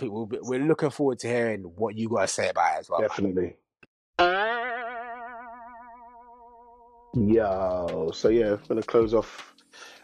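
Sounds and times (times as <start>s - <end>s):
twanging boing sound effect: 4.2s - 7.1s.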